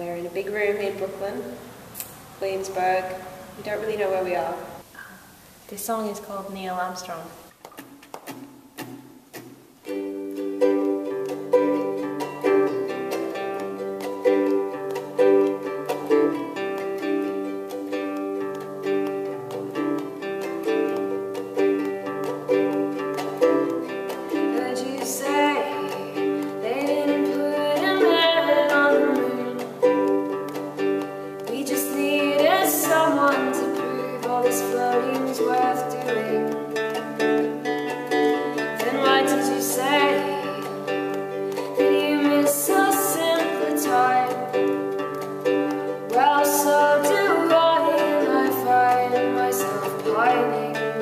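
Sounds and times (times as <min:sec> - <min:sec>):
acoustic guitar playing: 0:00.0 - 0:05.5, 0:06.9 - 0:51.0
ukulele strumming: 0:00.0 - 0:51.0
woman singing: 0:23.4 - 0:51.0.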